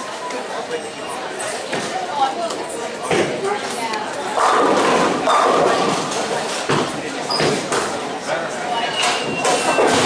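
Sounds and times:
bowling ball crashing into pins: 0:04.4 - 0:07.7.

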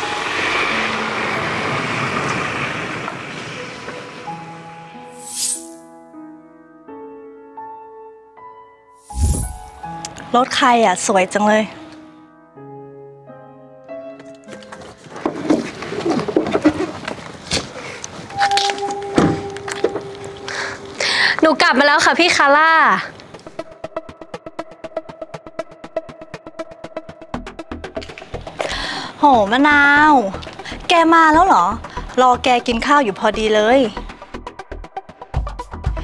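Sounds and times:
pickup truck engine and tyres: 0:00.0 - 0:04.8.

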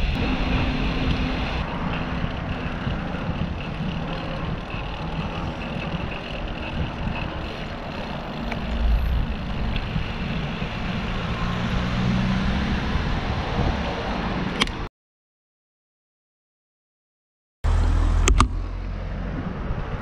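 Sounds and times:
low rumble: 0:00.0 - 0:13.8
road traffic noise: 0:00.0 - 0:14.9, 0:17.6 - 0:20.0.

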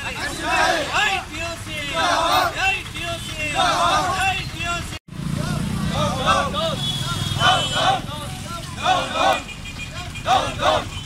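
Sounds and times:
people's voices: 0:00.0 - 0:11.0
vehicle engine humming: 0:00.0 - 0:11.0.

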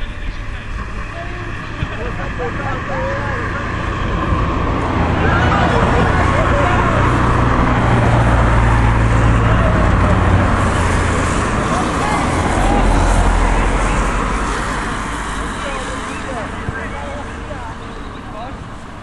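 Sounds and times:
distant shouts of players: 0:00.0 - 0:18.4
loud low rumble: 0:00.0 - 0:19.0.

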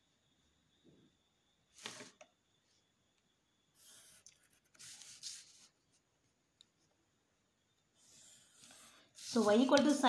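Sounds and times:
pencil scratching on paper: 0:03.8 - 0:05.7, 0:08.0 - 0:10.0.

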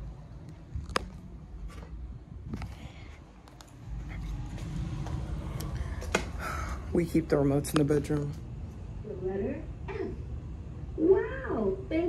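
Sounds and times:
camera handling rumble: 0:00.7 - 0:03.8.

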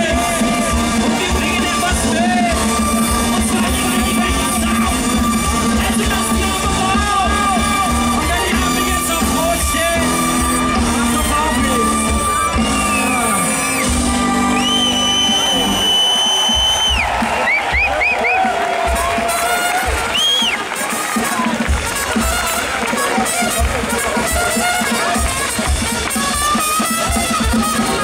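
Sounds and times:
brass band playing: 0:00.0 - 0:28.0
crowd cheering: 0:00.0 - 0:28.0
drums beating: 0:00.0 - 0:28.0.

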